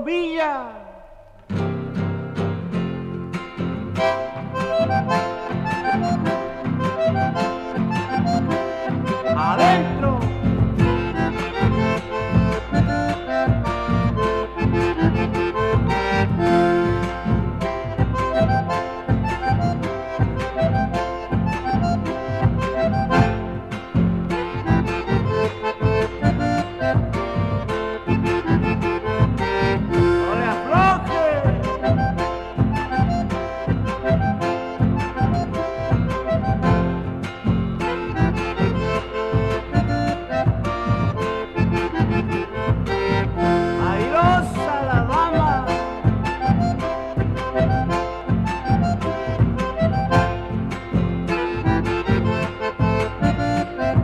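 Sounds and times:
guitar: 0.0 - 54.0
accordion melody: 1.0 - 54.0
deep bass notes: 3.8 - 54.0
steady beat: 3.8 - 54.0.

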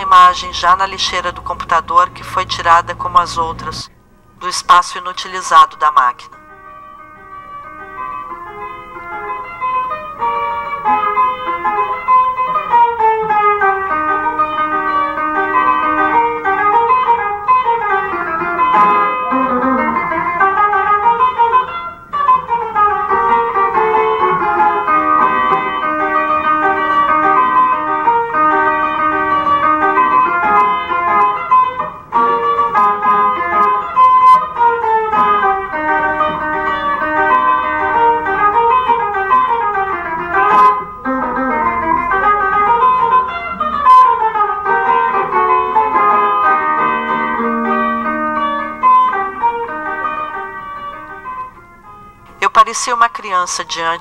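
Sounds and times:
plucked cavaquinho melody: 6.0 - 53.1.

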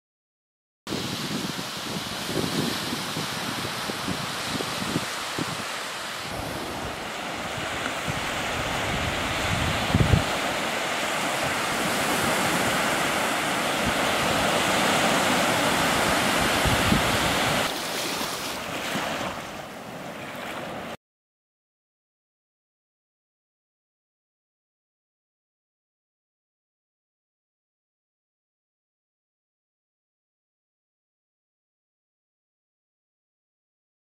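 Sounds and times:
wind buffeting microphone: 0.9 - 17.7
waves washing onto beach: 0.9 - 21.0.

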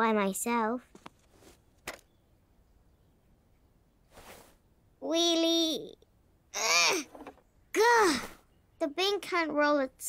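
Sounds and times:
soft cartoon swish: 4.1 - 4.6.

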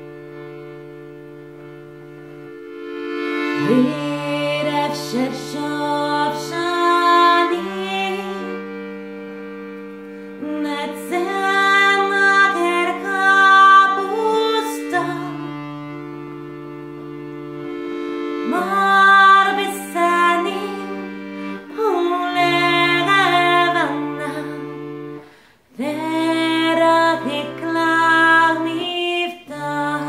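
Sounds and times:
accordion chords: 0.0 - 30.0
woman singing slow melody: 3.6 - 8.9, 10.4 - 15.8, 18.4 - 25.0, 25.7 - 30.0.

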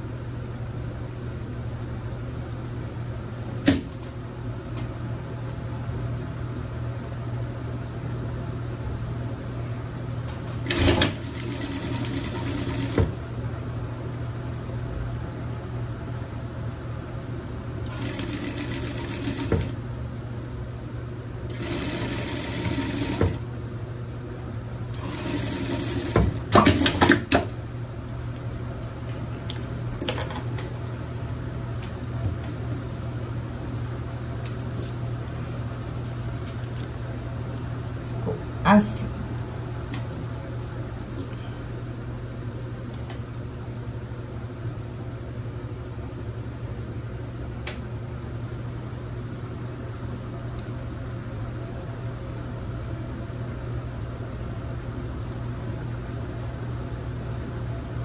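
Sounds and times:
steady low hum: 0.0 - 58.0
sewing machine stitching: 10.6 - 13.1, 17.9 - 19.8, 21.5 - 23.4, 25.0 - 27.3.

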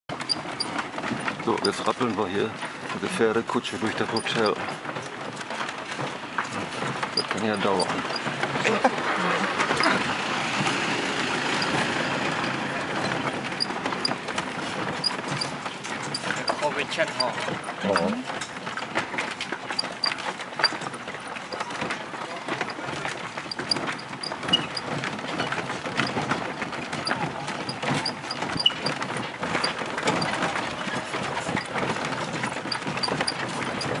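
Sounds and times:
carriage rattling: 0.1 - 34.0
hooves clip-clopping: 0.1 - 34.0.

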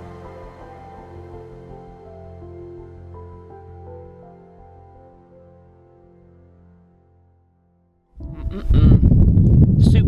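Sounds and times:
wind buffeting microphone: 8.2 - 10.0.

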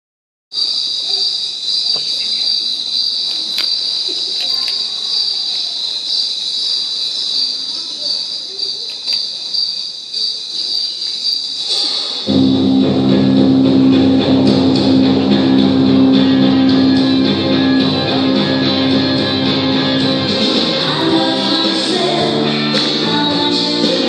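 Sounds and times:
high-pitched insect chirring: 0.6 - 11.8.

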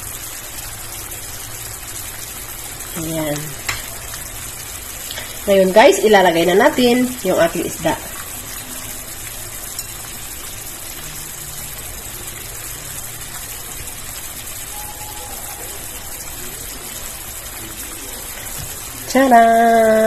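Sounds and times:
sauce bubbling in a pan: 0.0 - 20.0.

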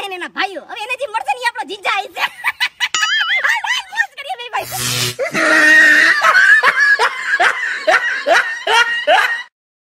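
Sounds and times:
person laughing: 5.2 - 9.5.

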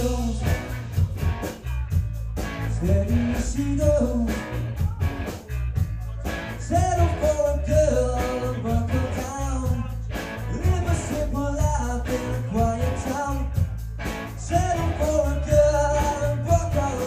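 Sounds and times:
live rock band playing: 0.0 - 17.0.

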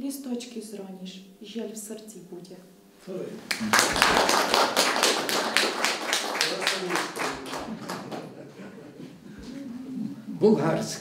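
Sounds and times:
audience applause: 3.5 - 8.6.

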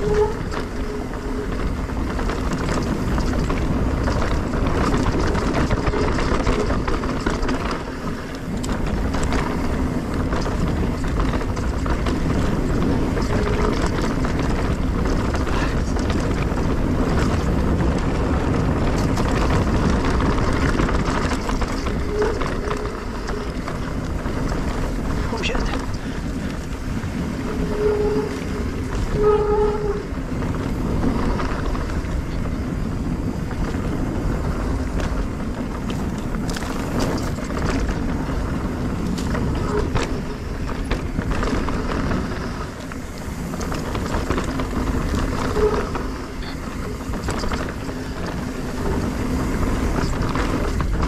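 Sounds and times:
bike rattling and clicking: 0.0 - 51.0
tyres rolling over dirt: 0.0 - 51.0
wind on microphone: 0.0 - 51.0.

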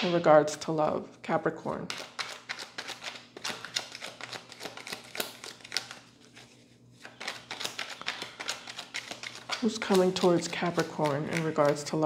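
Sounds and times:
cards being shuffled: 1.9 - 12.0.

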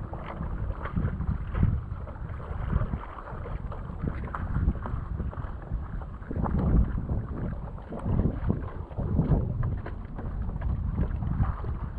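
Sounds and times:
water lapping against paddleboard: 0.0 - 11.9
wind buffeting microphone: 0.0 - 11.9.

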